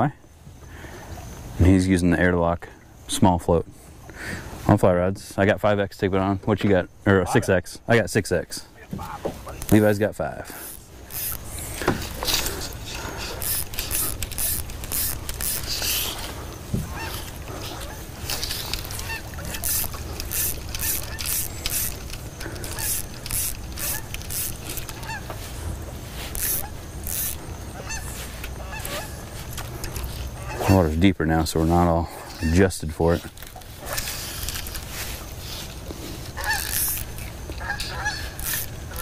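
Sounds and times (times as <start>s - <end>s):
geese honking: 9.0s - 31.0s, 34.9s - 39.0s.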